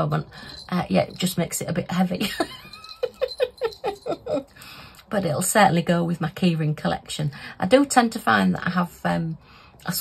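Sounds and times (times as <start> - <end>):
woman laughing: 2.2 - 4.6.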